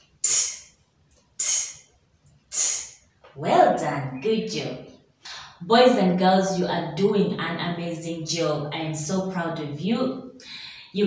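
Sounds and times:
woman saying aspirated t sound: 0.2 - 0.6, 1.4 - 1.8, 2.5 - 2.9.

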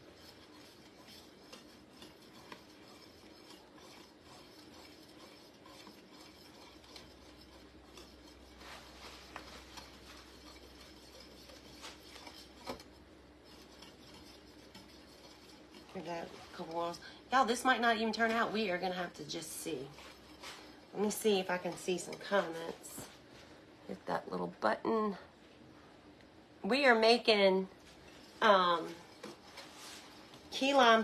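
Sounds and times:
utensil scraping pot: 0.0 - 23.2, 27.2 - 31.0.

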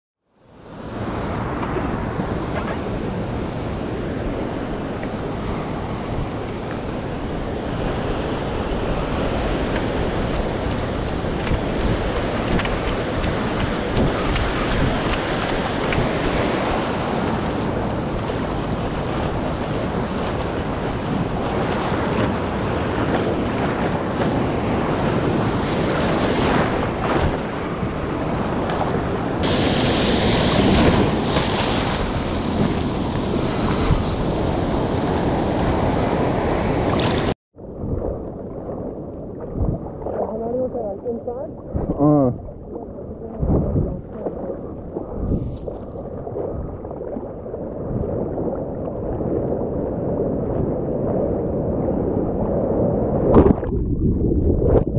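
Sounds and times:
ocean surf breaking: 0.6 - 37.4
wind buffeting microphone: 0.9 - 54.9
water splashing around surfboard: 9.0 - 40.6, 43.4 - 51.5, 53.2 - 54.9.

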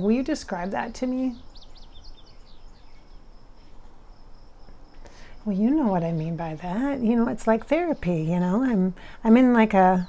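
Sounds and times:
insect trilling: 0.0 - 8.8.

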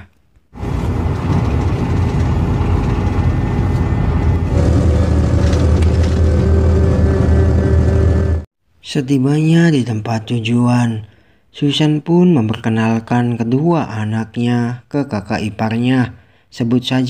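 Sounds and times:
constant hum: 0.6 - 8.5
vehicle rumble from inside cabin: 0.6 - 8.5.

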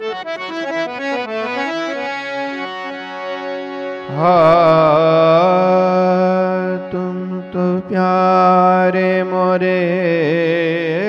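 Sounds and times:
man singing devotional song: 4.1 - 11.0.

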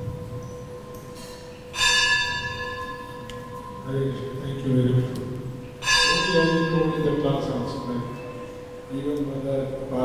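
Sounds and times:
steady ringing tone: 0.0 - 10.0
bell struck and ringing: 1.2 - 4.4, 5.8 - 8.5.

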